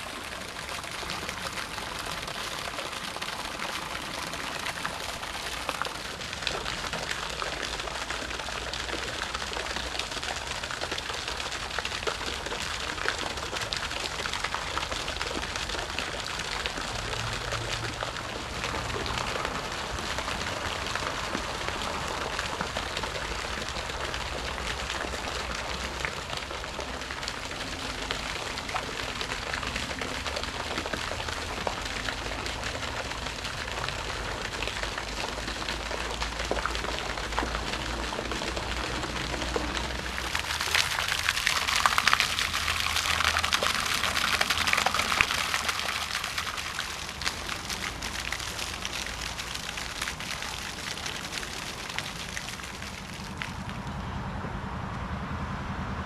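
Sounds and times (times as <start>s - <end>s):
fountain splashing onto water: 0.0s - 54.0s.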